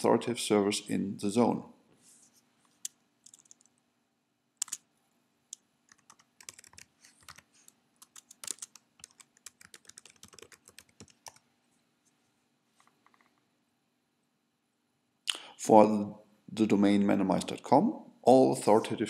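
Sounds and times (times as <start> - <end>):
typing on computer keyboard: 3.2 - 3.7, 4.6 - 4.8, 5.9 - 11.4.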